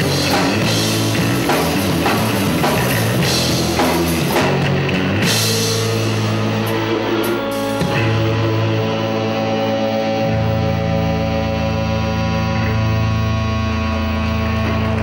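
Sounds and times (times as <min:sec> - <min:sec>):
drum hit: 0:00.0 - 0:06.1
bass guitar sustained notes: 0:00.0 - 0:15.0
electric guitar sustained notes: 0:00.0 - 0:15.0.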